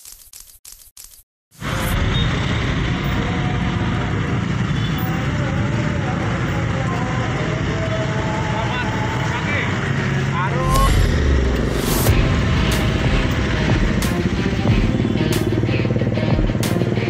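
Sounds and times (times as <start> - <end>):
car and motorcycle engines: 1.6 - 17.0
loud low rumble: 10.5 - 15.3.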